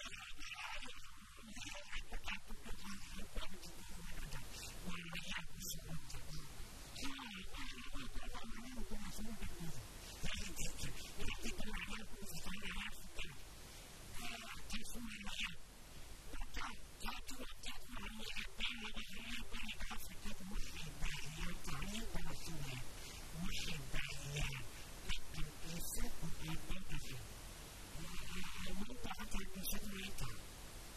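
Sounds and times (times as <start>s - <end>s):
elderly man speaking into microphone: 0.0s - 13.4s, 14.1s - 15.6s, 16.3s - 27.3s, 28.0s - 30.4s.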